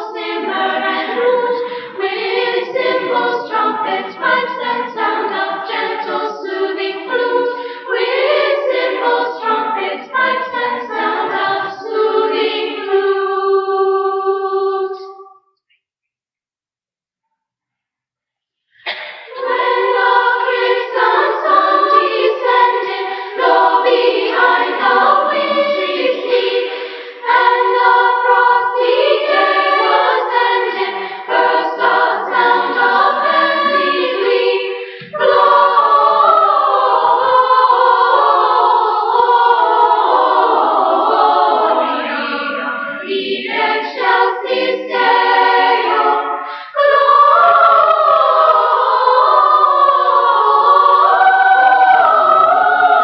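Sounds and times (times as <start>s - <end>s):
children's choir singing: 0.0s - 15.4s, 18.8s - 53.0s.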